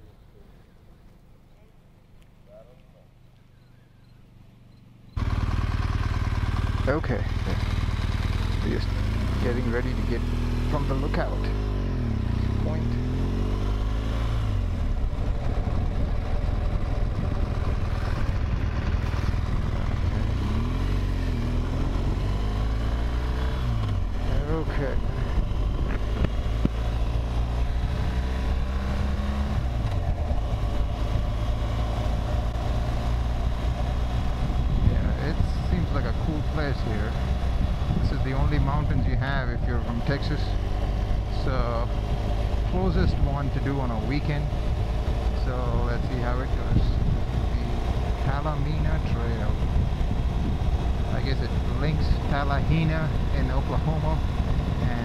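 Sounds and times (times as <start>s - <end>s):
wind and road noise: 0.0s - 55.0s
motorcycle engine running: 4.5s - 55.0s.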